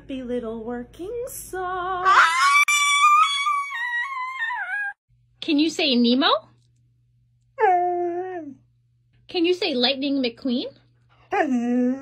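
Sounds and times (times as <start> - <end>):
small dog howling: 2.0 - 5.0.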